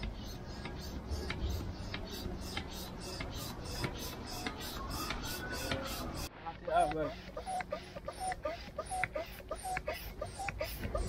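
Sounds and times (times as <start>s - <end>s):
hand air pump strokes: 0.0s - 11.0s.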